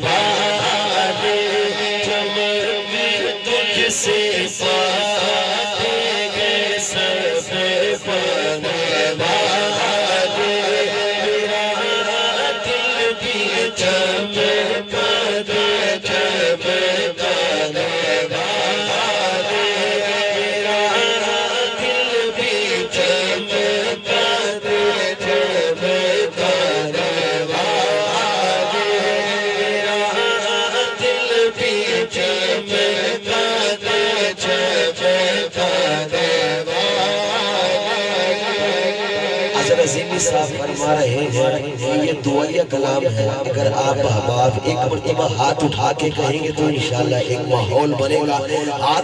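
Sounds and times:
men chanting vocal backing: 0.0s - 45.5s
man singing into microphone: 0.0s - 49.0s.

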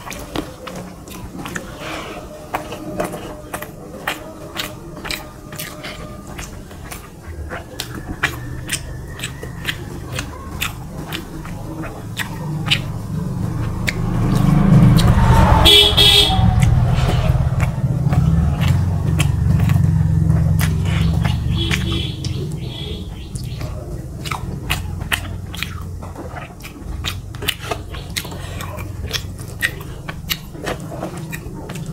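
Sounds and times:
fingers mixing food on metal plate: 0.0s - 15.4s
loud low rumble: 12.4s - 22.7s
horn blast: 14.0s - 19.4s.

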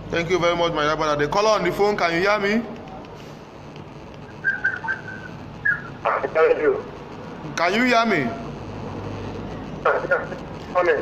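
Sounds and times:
high whistle-like chirps: 4.2s - 6.0s.

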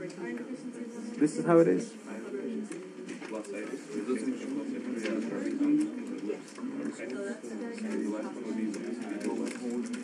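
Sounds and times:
soft voices talking quietly: 0.0s - 10.0s.

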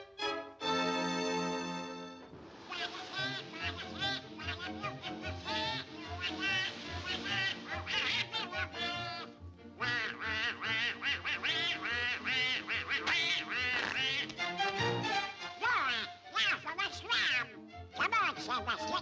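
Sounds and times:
bouncy orchestral cartoon music: 0.0s - 19.0s
quacking cartoon duck voice: 2.7s - 14.5s, 15.6s - 19.0s.

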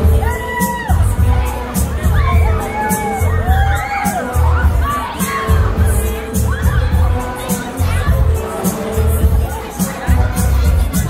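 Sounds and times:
ride music with pulsing bass: 0.0s - 11.0s
riders screaming: 2.0s - 7.1s.

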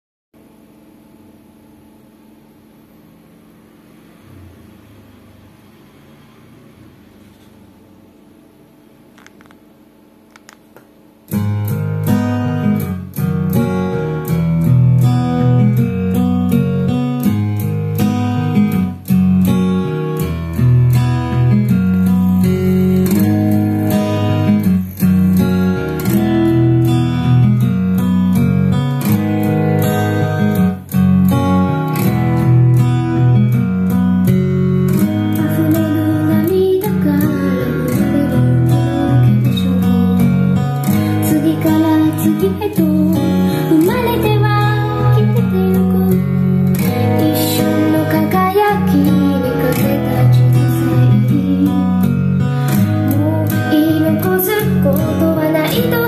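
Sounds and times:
recorded music through speaker: 11.3s - 56.0s.

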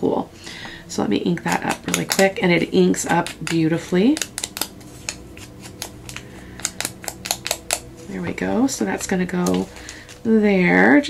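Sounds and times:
foam applicator tapping on paper: 3.0s - 7.9s.

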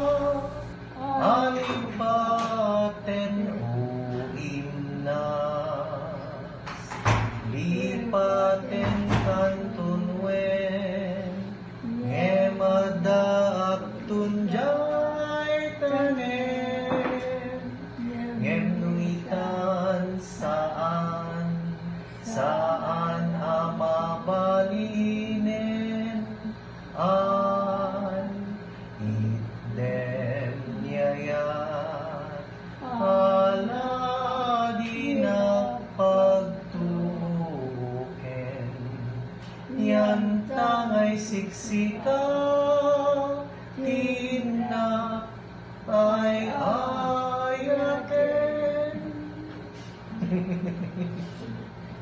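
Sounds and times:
slow chant-like singing: 0.0s - 52.0s.

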